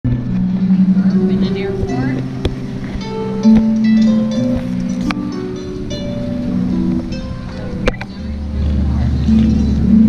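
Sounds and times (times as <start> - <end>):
harp playing: 0.1 - 10.0
people talking: 0.6 - 3.6, 7.4 - 10.0.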